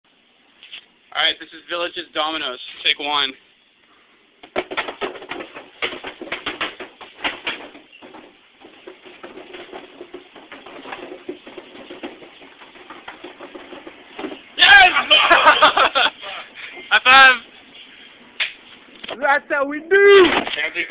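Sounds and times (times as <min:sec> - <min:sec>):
cardboard boxes toppling: 0:04.4 - 0:15.7.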